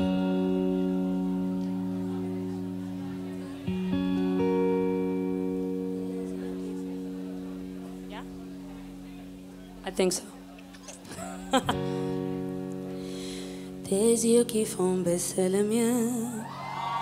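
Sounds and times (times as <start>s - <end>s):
guitar playing slow chords: 0.0s - 17.0s.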